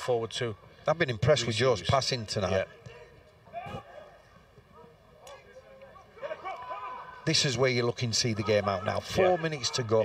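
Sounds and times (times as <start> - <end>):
distant players shouting: 3.5 - 7.5.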